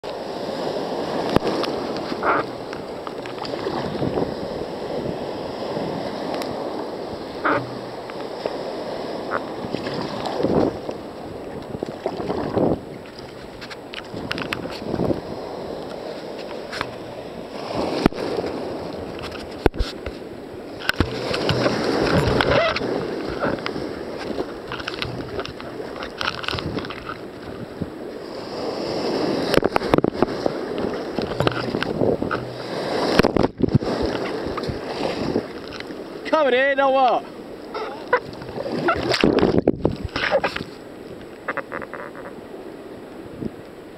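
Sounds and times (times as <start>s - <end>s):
surf rushing around kayak: 0.0s - 43.9s.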